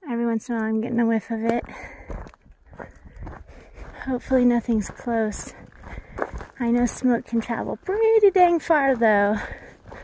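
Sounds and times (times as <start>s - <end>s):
footsteps on dirt trail: 0.4s - 10.0s.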